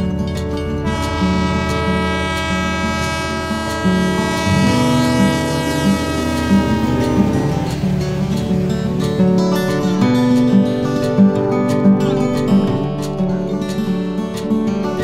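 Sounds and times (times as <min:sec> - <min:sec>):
strummed acoustic guitar music: 0:00.0 - 0:15.0
train horn blast: 0:00.8 - 0:09.2.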